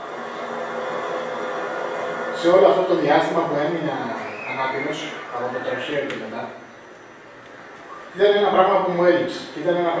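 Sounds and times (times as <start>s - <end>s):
noisy film soundtrack over speakers: 0.0s - 10.0s.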